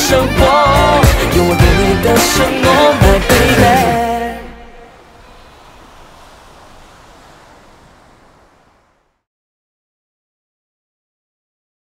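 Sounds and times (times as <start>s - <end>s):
ocean surf washing on beach: 4.6s - 9.2s.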